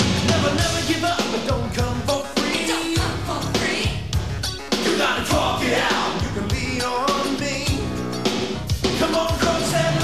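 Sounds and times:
upbeat rock song with drums: 0.0 - 10.0.

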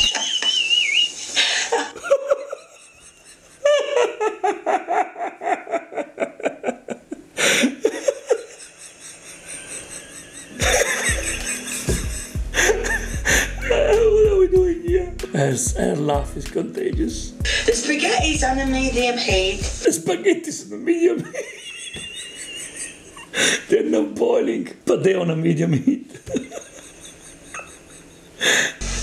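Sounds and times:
hearty laughter: 0.0 - 14.5, 21.2 - 23.7, 25.8 - 28.8
music playing: 10.5 - 20.0, 28.8 - 29.0.

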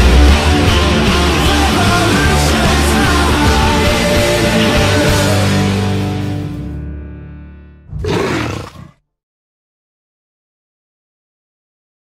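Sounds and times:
big cat roaring: 7.9 - 9.0.

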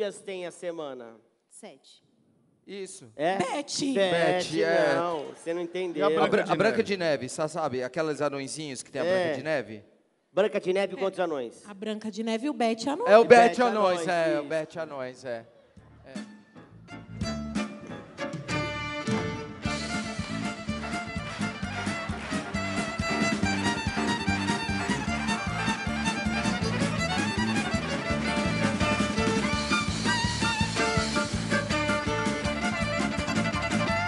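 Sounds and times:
lively music over sound system: 16.1 - 34.0.

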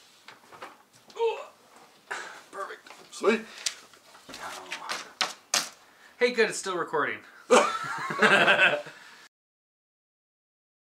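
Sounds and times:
paper rustling and snapping: 3.6 - 5.8.

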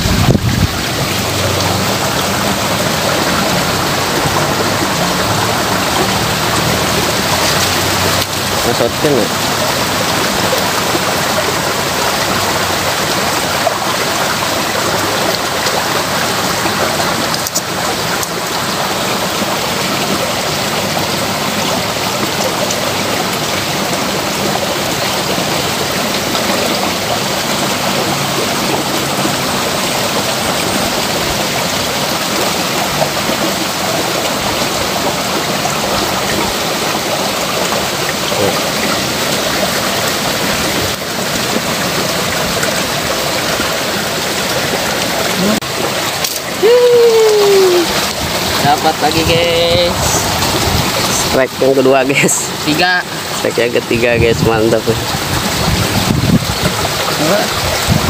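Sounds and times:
water babbling over stones: 0.0 - 58.0.

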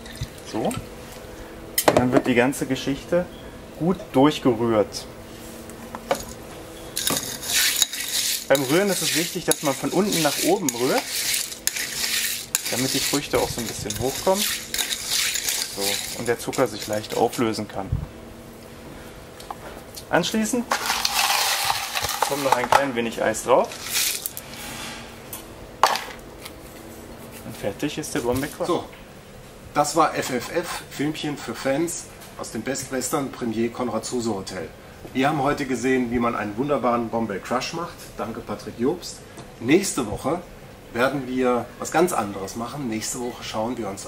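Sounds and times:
ice stirred in a glass: 7.0 - 17.4, 20.7 - 22.6
ice clattering into glass: 20.7 - 22.7.

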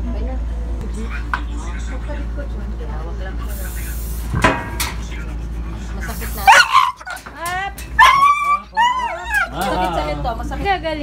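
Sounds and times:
dog whining and yelping: 8.0 - 9.7.

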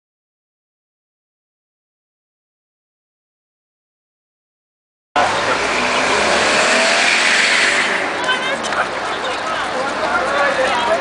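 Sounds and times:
vehicle passing by: 5.2 - 10.2
people's voices: 5.2 - 11.0.

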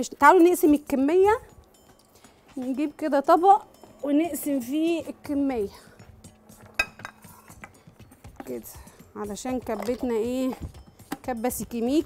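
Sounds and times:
kitchen dishes clinking: 6.7 - 7.8.

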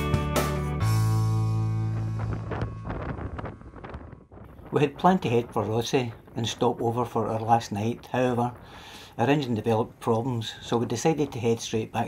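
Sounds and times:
background music chord: 0.0 - 3.8
wind buffeting microphone: 1.6 - 12.0.

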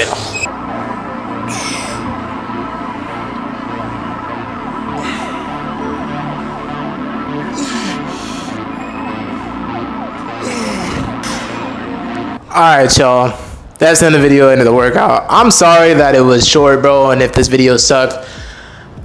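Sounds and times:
swoosh: 0.0 - 12.6
synth background music: 0.0 - 19.0.

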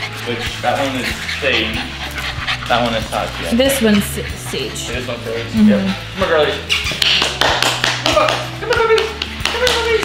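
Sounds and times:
sharp taps and claps: 6.9 - 10.0.

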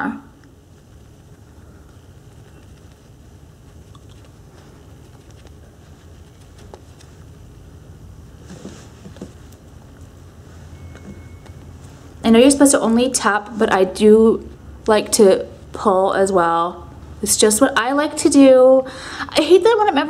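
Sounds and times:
low room hum: 0.0 - 20.0
puff patting and rubbing face: 0.5 - 12.2.

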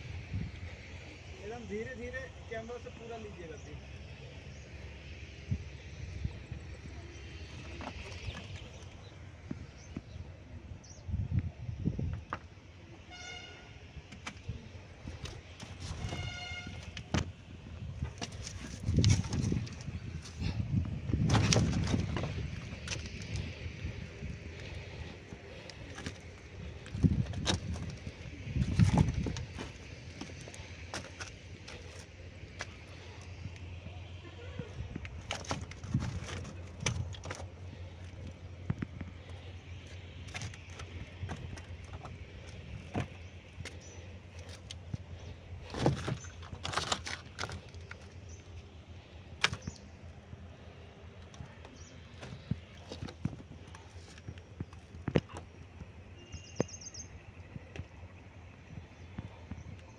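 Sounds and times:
steady low hum: 0.0 - 59.9
loud bumps: 18.0 - 31.9.

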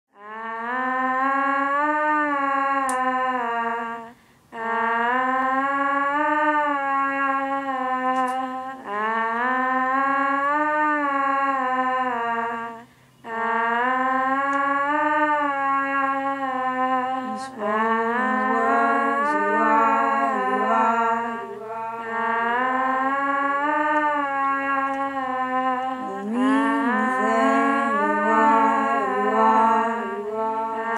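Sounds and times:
wordless female vocal: 0.2 - 1.8, 2.6 - 6.0, 6.7 - 23.4, 24.2 - 30.9.

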